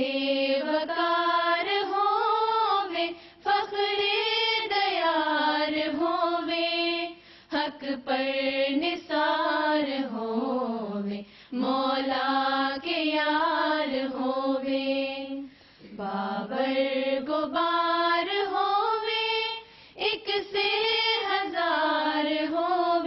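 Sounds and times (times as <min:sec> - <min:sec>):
women singing unaccompanied: 0:00.0 - 0:23.0
singers breathing: 0:03.1 - 0:03.5, 0:07.1 - 0:07.6, 0:11.2 - 0:11.6, 0:15.4 - 0:16.0, 0:19.6 - 0:20.0.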